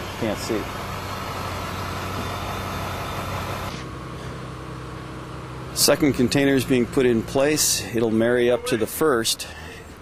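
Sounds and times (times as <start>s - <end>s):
diesel engine running: 0.0s - 10.0s.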